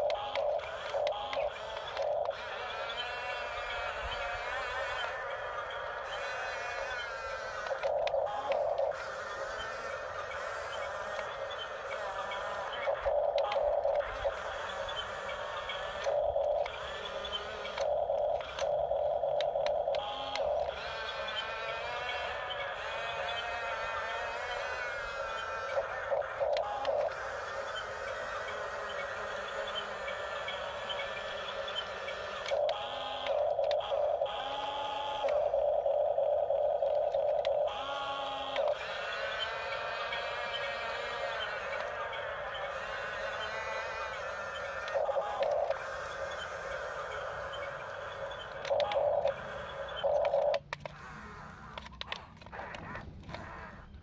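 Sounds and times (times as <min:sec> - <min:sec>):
toy bulldozer buzzing whine: 0:00.0 - 0:54.0.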